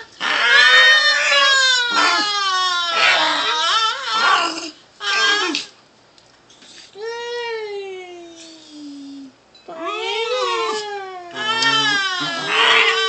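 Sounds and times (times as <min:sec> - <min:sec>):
small dog whining: 0:00.0 - 0:05.7, 0:08.9 - 0:13.0.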